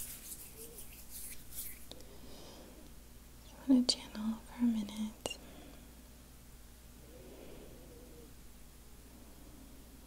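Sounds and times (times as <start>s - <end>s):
person whispering: 3.5s - 5.4s.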